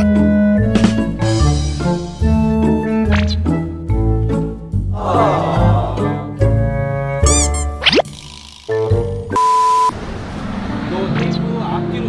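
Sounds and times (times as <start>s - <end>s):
light background music: 0.0s - 8.0s, 10.3s - 12.0s
cartoon springy boing: 7.2s - 9.3s.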